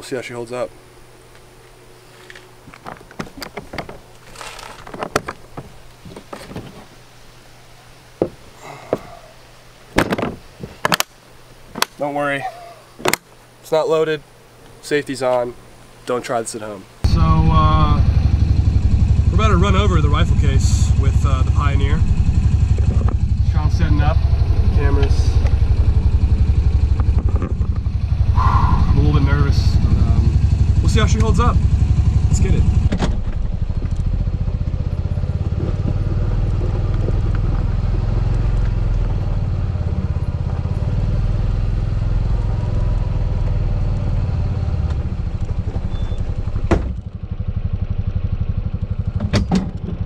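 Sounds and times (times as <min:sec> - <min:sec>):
case latches snapping shut: 0:10.0 - 0:11.1
plastic case clicks and knocks: 0:10.0 - 0:11.1
utility vehicle engine running: 0:17.0 - 0:50.0.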